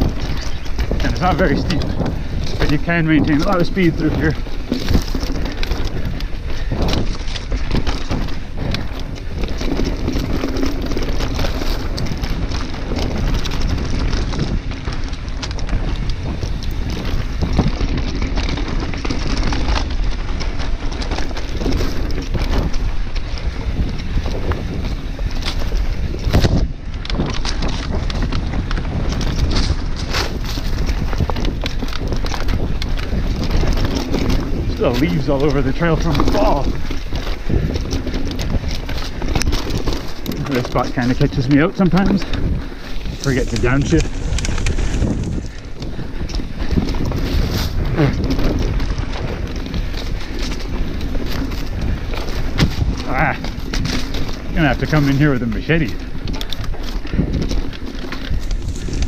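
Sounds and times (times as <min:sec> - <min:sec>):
bike rattling over rocks: 0:00.0 - 0:59.0
wind rumble on microphone: 0:00.0 - 0:59.0.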